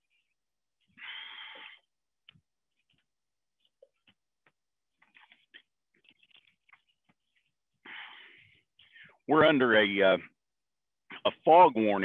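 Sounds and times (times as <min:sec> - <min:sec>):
man breathing noisily: 0:00.9 - 0:01.9, 0:07.8 - 0:09.2.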